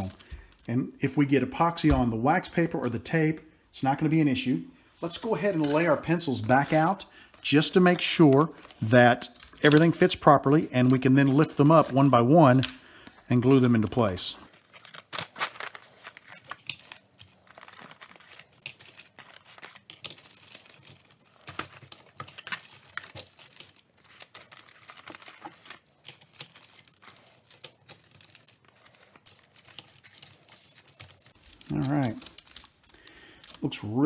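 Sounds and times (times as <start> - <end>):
paper and cardboard rustling: 0.0 - 0.8, 5.0 - 34.0.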